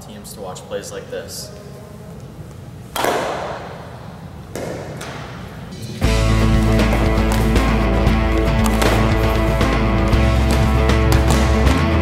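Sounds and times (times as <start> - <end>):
bat cracking against ball: 2.9 - 5.6, 6.5 - 12.0.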